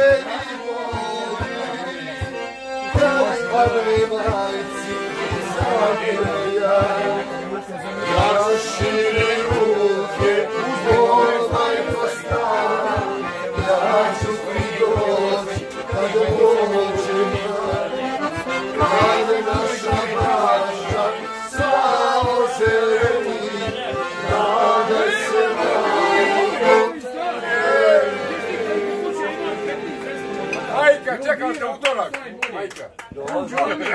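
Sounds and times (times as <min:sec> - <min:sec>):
group of people singing: 0:00.0 - 0:30.8
piano accordion folk tune: 0:00.0 - 0:31.8.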